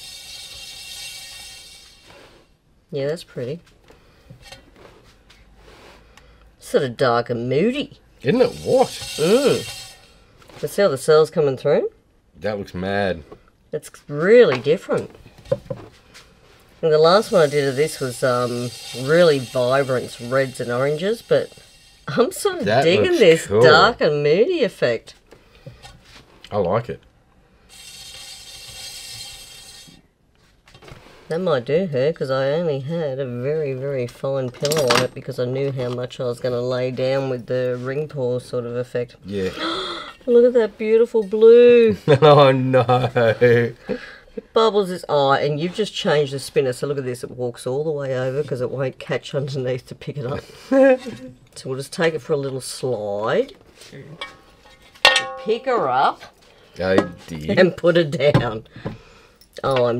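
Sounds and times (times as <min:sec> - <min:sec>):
spinner turntable whirring: 0:00.0 - 0:02.5, 0:08.2 - 0:11.0, 0:16.8 - 0:24.1, 0:27.7 - 0:30.1
turntable whirring and rattling: 0:17.0 - 0:23.3.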